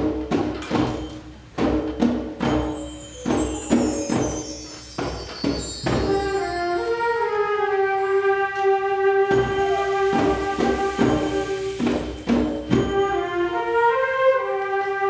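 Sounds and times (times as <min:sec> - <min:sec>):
percussion hits: 0:00.0 - 0:14.7.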